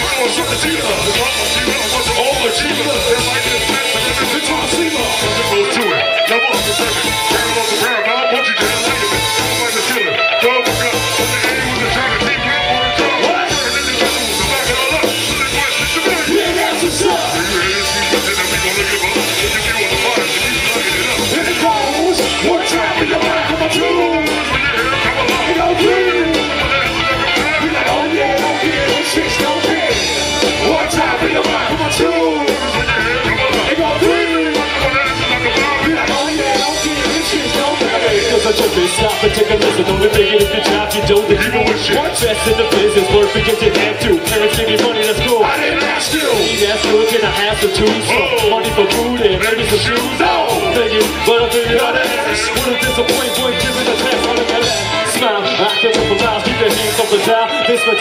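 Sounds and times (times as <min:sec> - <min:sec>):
bass guitar: 0:00.0 - 0:58.0
electric guitar: 0:00.0 - 0:58.0
hip-hop band playing: 0:00.0 - 0:58.0.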